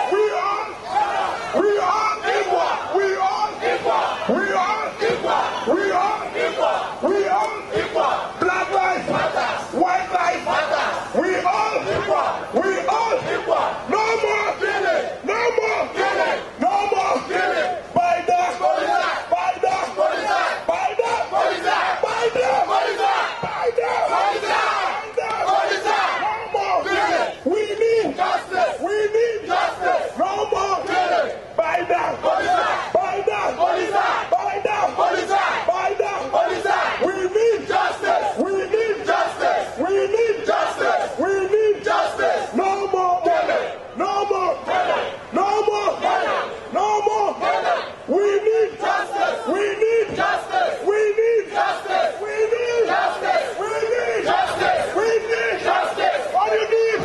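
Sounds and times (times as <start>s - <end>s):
crowd shouting together: 0.0s - 57.0s.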